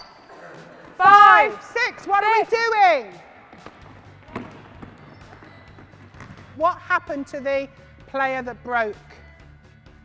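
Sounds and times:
ball thudding: 3.5 - 6.6.

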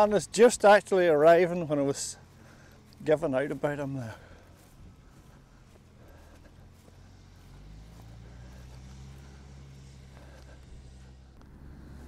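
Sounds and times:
faint tractor engine running: 0.0 - 12.0.

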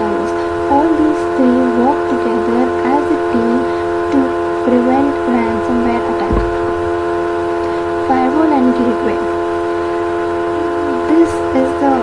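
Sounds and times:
brief low thump: 5.9 - 7.1.

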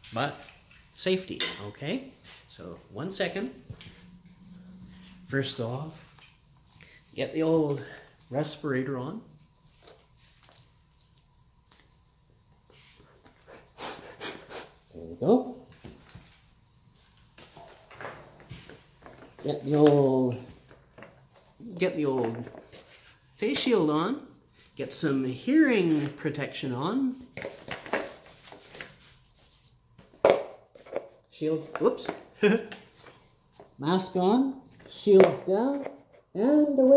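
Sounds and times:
sharp puffs of air through mask: 13.6 - 14.8.

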